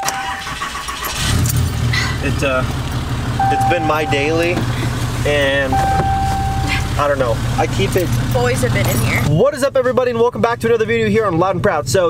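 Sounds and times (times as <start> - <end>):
truck engine cranking and idling: 0.0 - 12.0
electronic chime tone: 3.4 - 4.6, 5.7 - 7.1.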